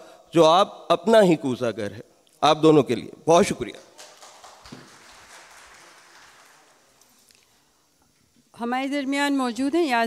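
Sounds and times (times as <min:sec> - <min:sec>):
audience applause: 0:04.0 - 0:07.1.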